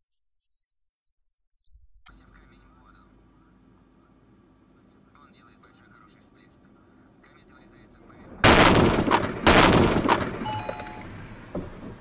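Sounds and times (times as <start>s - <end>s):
truck crashing into car: 8.4s - 12.0s.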